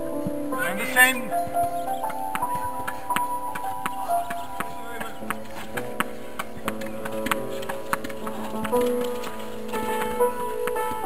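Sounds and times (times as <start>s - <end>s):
slow melodic background music: 0.0s - 11.0s.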